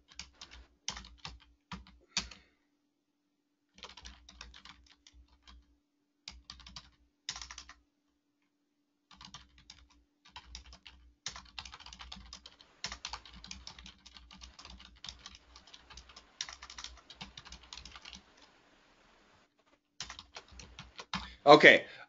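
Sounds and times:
typing on computer keyboard: 0.0 - 2.4, 3.7 - 5.7, 6.3 - 7.8, 9.1 - 18.6, 20.0 - 21.3.

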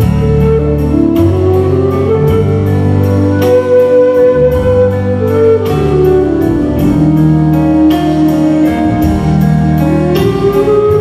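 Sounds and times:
bass guitar: 0.0 - 11.0
flute solo: 0.0 - 11.0
keyboard: 0.0 - 11.0.

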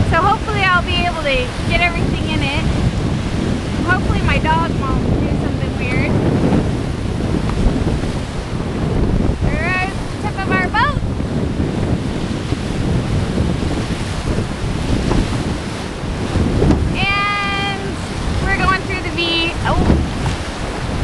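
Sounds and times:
whitewater rushing: 0.0 - 21.0
wind buffeting microphone: 0.0 - 21.0.

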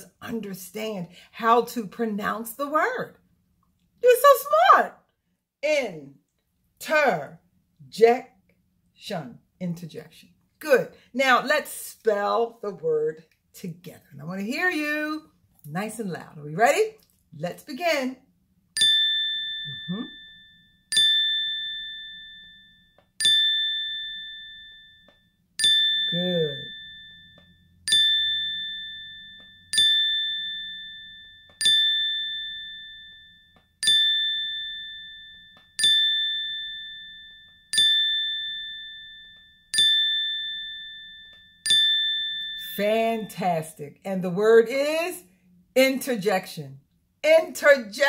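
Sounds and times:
bell-like ding: 18.8 - 43.4.

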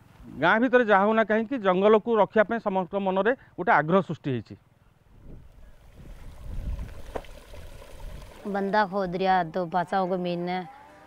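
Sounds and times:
wind buffeting microphone: 5.1 - 8.5.

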